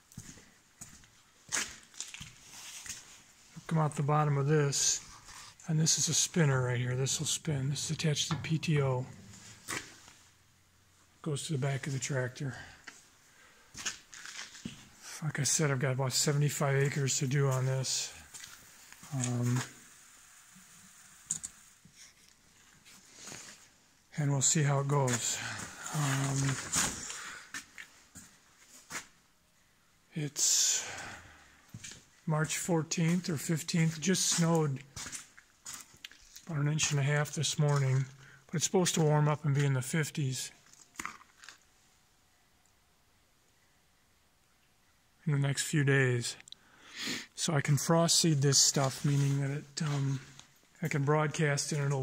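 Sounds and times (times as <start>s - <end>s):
soft shuffles and rustles: 0.0s - 10.4s, 13.7s - 15.0s, 15.6s - 20.0s, 20.6s - 29.2s, 31.7s - 38.2s, 47.4s - 51.8s
footsteps on dirt floor: 0.1s - 3.2s, 18.3s - 19.7s, 25.1s - 29.1s, 31.7s - 36.5s.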